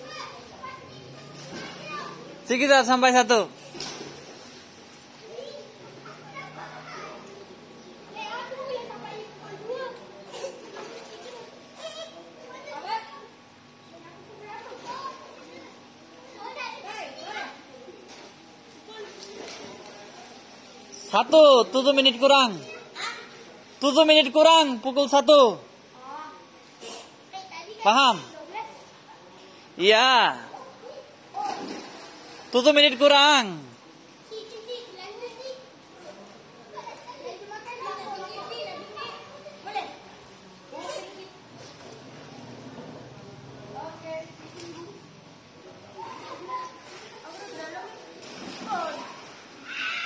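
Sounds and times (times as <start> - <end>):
children calling out: 0.0 - 2.4, 5.2 - 13.4, 45.9 - 50.0
children calling and chattering: 0.0 - 50.0.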